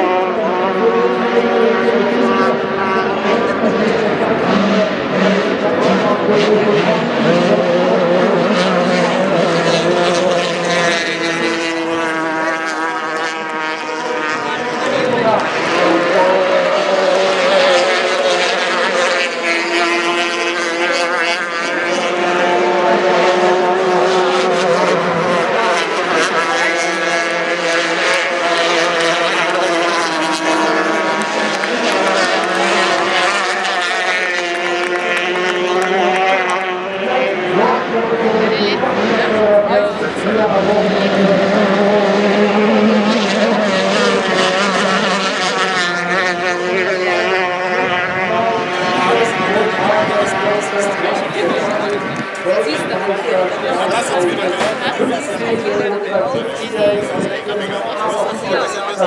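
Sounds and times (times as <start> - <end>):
racing boat engines at high revs: 0.0 - 59.0.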